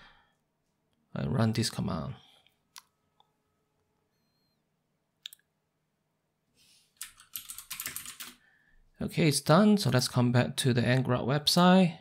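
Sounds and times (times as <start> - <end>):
typing on computer keyboard: 7.0 - 8.4.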